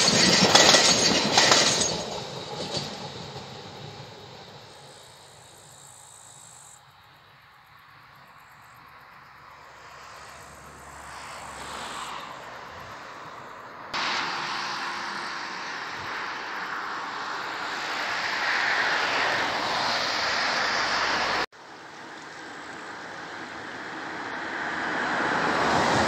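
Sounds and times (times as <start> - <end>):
distant electric train passing: 0.0 - 26.0
car driving past: 9.4 - 21.5.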